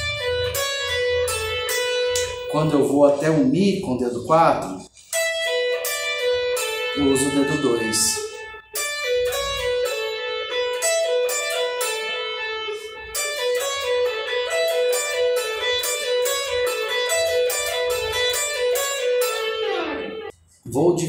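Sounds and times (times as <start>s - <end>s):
electric guitar lick: 0.0s - 3.4s, 4.6s - 20.3s.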